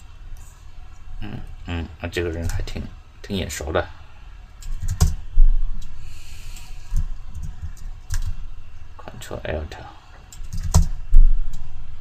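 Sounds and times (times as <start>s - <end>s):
keyboard and mouse clicks: 6.9s - 8.4s.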